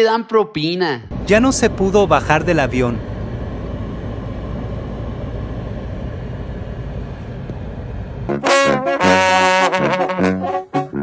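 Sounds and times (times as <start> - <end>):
vehicle rumble with hiss: 1.1 - 8.4.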